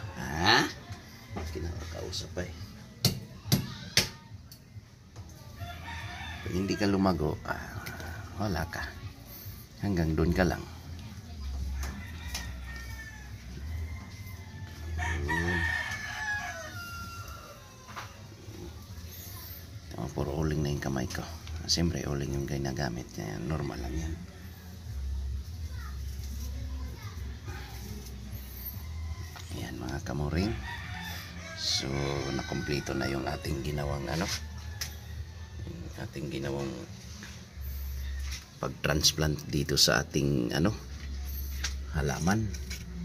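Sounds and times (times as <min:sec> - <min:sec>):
rooster crowing faintly: 0:11.0 - 0:19.6.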